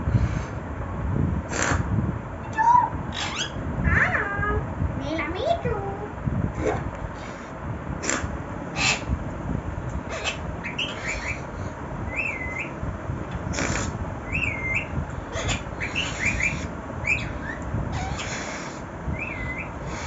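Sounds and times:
parakeet chirps: 0:02.5 - 0:04.2, 0:08.8 - 0:09.1, 0:10.0 - 0:11.5, 0:12.1 - 0:12.8, 0:13.5 - 0:20.0
parakeet whistled calls: 0:02.8 - 0:03.6, 0:08.8 - 0:09.1, 0:10.1 - 0:11.5, 0:12.1 - 0:12.8, 0:13.6 - 0:20.0.

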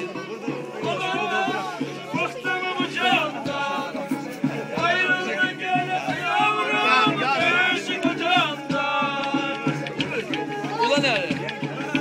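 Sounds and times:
bass drum beat: 0:00.0 - 0:12.0.

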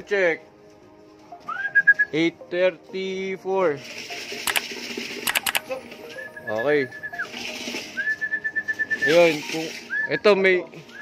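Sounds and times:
sharp clicks: 0:04.5 - 0:04.7, 0:05.3 - 0:05.7.

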